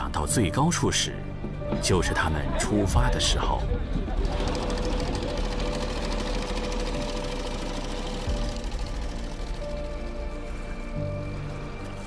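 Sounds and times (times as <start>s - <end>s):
background music: 0.0s - 12.0s
boat engines chugging: 2.8s - 12.0s.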